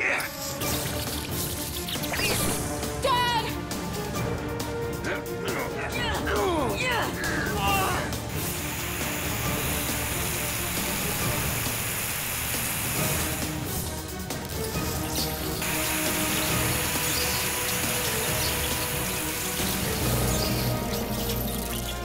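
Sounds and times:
cartoon background music: 0.0 - 22.0
water jets hissing: 7.4 - 22.0.

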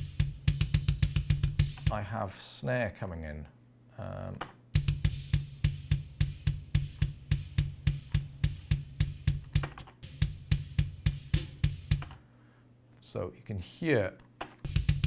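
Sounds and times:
kick drum hits: 0.0 - 1.9, 4.8 - 12.1, 14.7 - 15.0
snare drum: 0.0 - 2.0, 4.8 - 12.2, 14.7 - 15.0.

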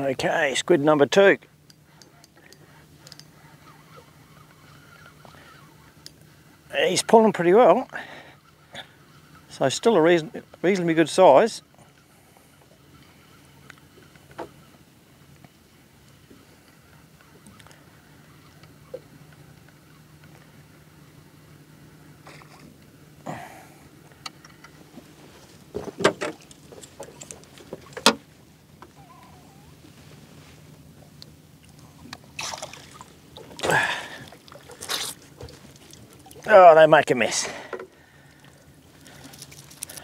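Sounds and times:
water splashing and streaming: 31.6 - 36.8.

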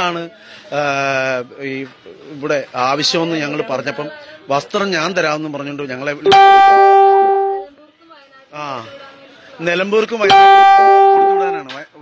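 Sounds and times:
steady musical tone: 6.3 - 7.7, 10.3 - 11.6.

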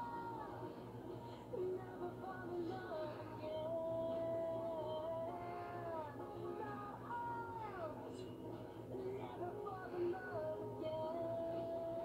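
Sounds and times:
backing music through tv speaker: 0.0 - 12.0.

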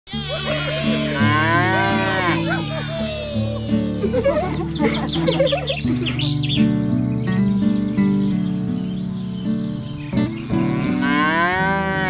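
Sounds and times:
cow mooing: 0.1 - 3.6, 10.6 - 12.0.

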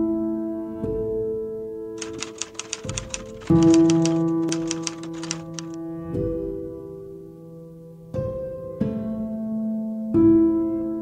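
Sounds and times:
keyboard typing clicks: 2.0 - 5.8.

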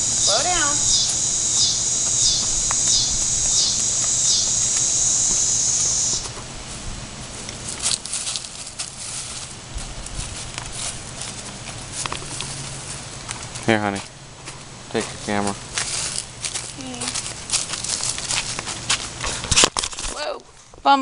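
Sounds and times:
cicadas buzzing: 0.0 - 6.7
footsteps on wood-chip mulch: 0.0 - 20.4.

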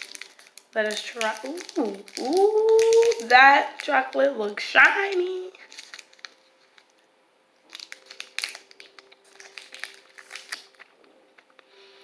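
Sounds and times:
plastic wrapper crinkling: 0.0 - 7.0, 7.6 - 11.8.

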